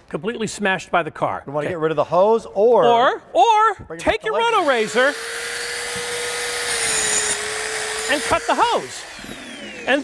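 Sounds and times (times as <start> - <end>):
circular saw cutting rubber hose: 4.5 - 10.0.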